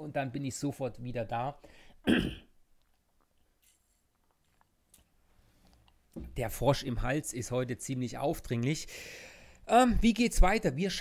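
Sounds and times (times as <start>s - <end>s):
man clearing his throat: 2.0s - 2.6s.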